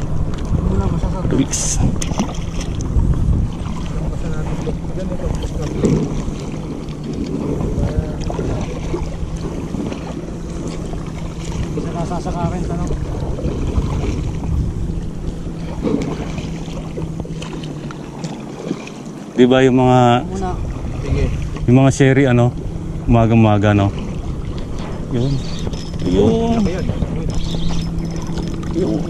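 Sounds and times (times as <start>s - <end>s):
wind on microphone: 0.0s - 18.9s, 19.6s - 29.0s
boat engine humming: 0.0s - 29.0s
water washing against boat: 0.0s - 29.0s.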